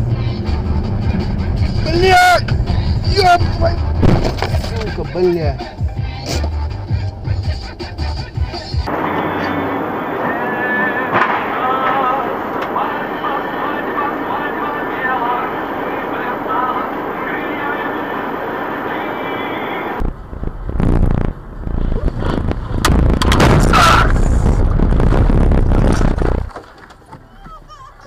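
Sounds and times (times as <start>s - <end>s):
rumbling road noise: 0.0s - 28.0s
traffic and street noise: 0.0s - 28.0s
voices: 1.5s - 6.4s, 8.6s - 20.0s, 23.5s - 24.4s
car crash: 3.9s - 4.9s, 8.9s - 14.6s, 20.0s - 27.0s.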